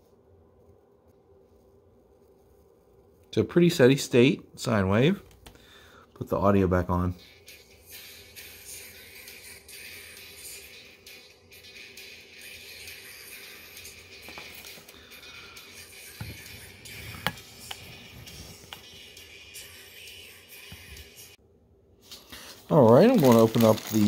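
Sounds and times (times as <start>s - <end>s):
tesla coil playing music: 7.2s - 21.4s.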